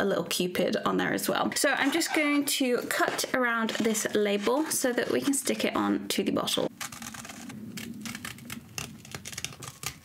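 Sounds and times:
scissors snipping paper: 6.8 - 10.0.

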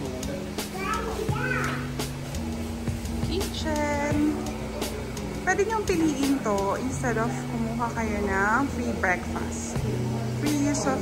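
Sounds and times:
background music with held low notes: 0.0 - 11.0
child's high voice: 0.7 - 2.0.

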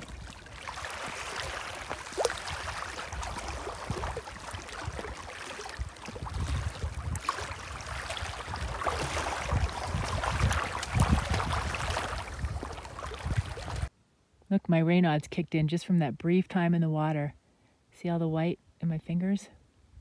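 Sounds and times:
person swimming splashing: 0.0 - 13.9
water lapping on rocky shore: 0.0 - 13.9.

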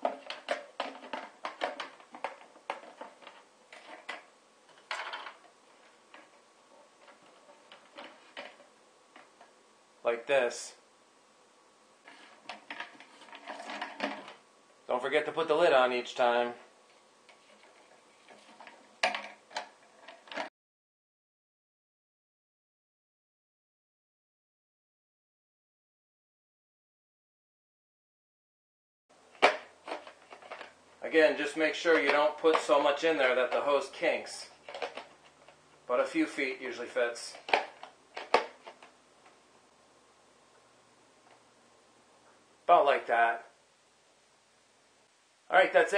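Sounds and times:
plastic bottle crinkling: 0.0 - 9.5, 12.0 - 14.4, 16.9 - 20.5, 29.3 - 35.6, 37.2 - 39.0.

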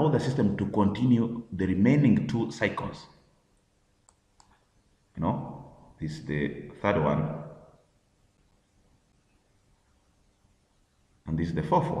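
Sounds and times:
computer mouse clicks: 4.0 - 4.7.

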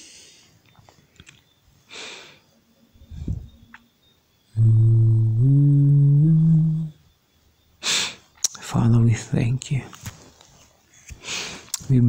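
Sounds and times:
man humming: 4.6 - 7.0.

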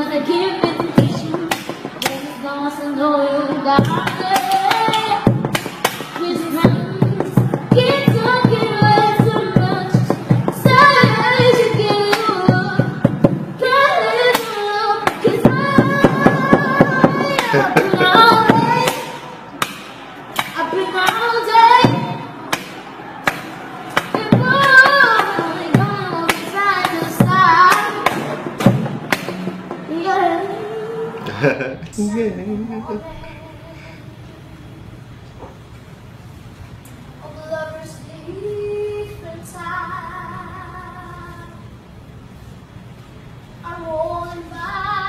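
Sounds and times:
boy singing: 0.0 - 5.3, 6.1 - 19.2, 24.1 - 28.3, 29.9 - 34.7, 37.2 - 41.7, 43.6 - 45.0.

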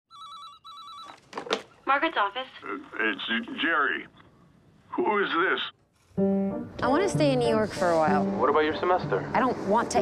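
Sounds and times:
telephone ringing electronic trill: 0.1 - 1.2
woman answering phone: 1.8 - 2.8.

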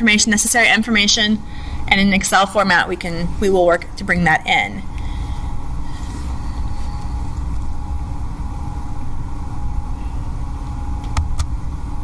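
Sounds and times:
low room rumble and hum: 0.0 - 12.0.

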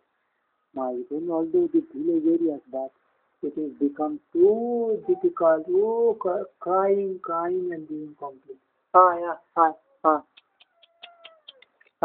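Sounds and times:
cat meowing faintly: 10.4 - 11.6.

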